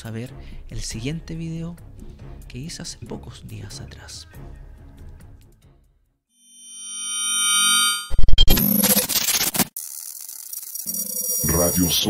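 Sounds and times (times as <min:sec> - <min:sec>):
synthesized tone: 0:06.5 - 0:09.6, 0:10.9 - 0:12.0.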